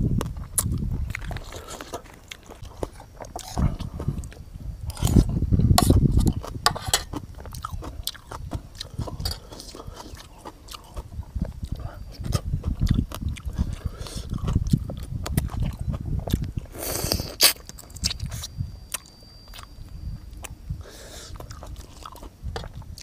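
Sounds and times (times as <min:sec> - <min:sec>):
person chewing wet mouth clicks: 0:07.5 - 0:19.7.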